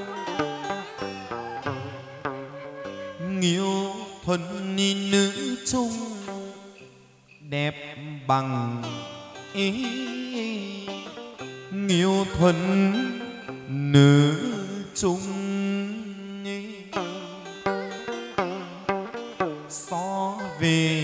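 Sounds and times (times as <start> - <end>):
plucked lute sliding notes: 0.0 - 6.9, 8.7 - 21.0.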